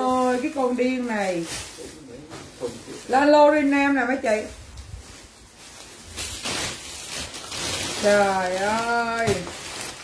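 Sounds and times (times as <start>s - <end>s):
bags rustling and crinkling: 0.0s - 10.0s.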